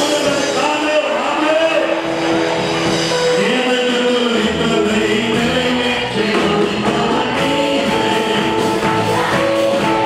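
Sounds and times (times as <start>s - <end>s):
man singing into a microphone: 3.1s - 9.8s.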